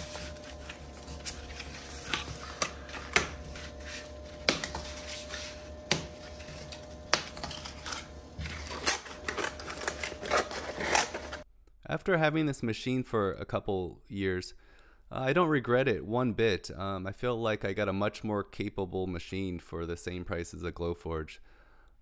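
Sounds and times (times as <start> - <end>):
steady hum: 0.0 - 11.4.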